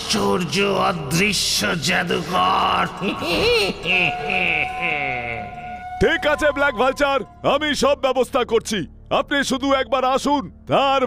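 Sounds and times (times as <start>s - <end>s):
cartoon villain gloating laugh: 2.6s - 5.8s
steady held tone: 3.9s - 7.5s.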